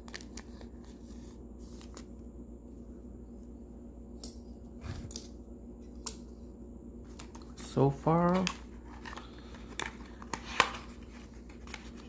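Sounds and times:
plastic card sleeve rustling: 0:08.2 - 0:12.0.

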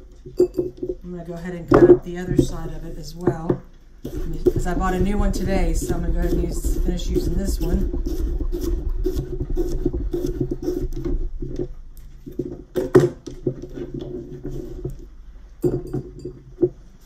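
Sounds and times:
steady low hum: 0:00.0 - 0:12.8.

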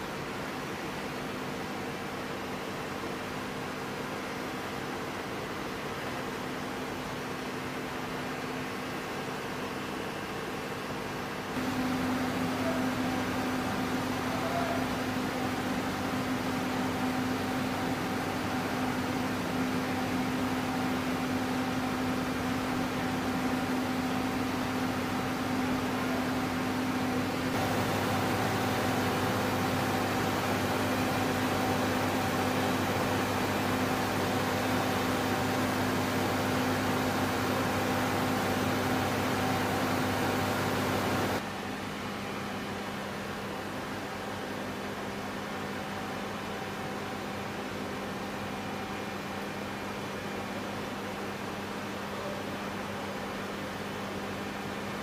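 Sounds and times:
machinery hum: 0:07.7 - 0:45.3.

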